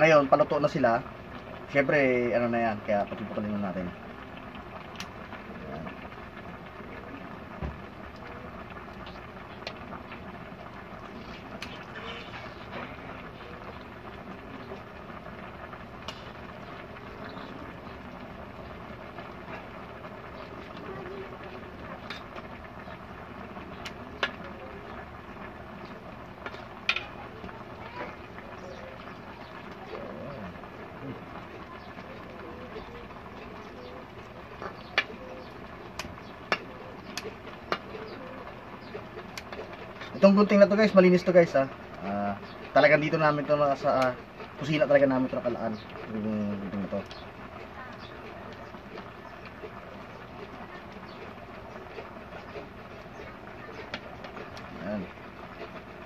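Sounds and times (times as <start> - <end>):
sausages simmering in a pot: 0.0 - 56.0.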